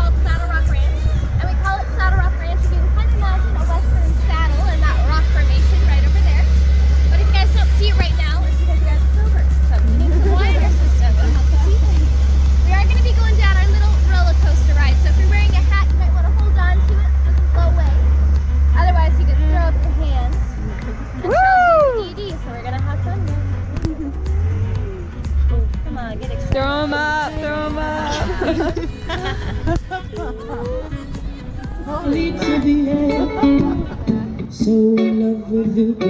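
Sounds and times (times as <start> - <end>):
wind on microphone: 0.0 - 19.4, 23.2 - 34.8
vehicle rumbling on dirt track: 0.0 - 34.9
chattering voices: 0.0 - 36.0
music: 0.0 - 36.0.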